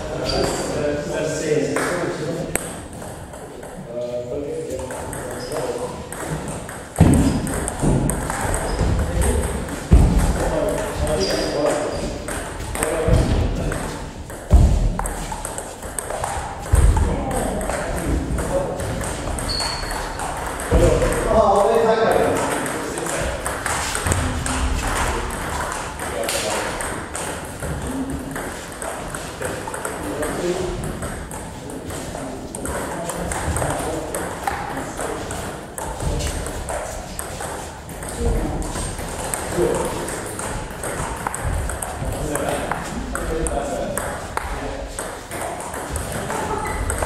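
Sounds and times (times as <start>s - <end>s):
table tennis ball clicking: 6.1s - 10.4s, 39.2s - 47.0s
louder knocks: 7.0s - 9.1s
voices talking: 7.2s - 14.6s.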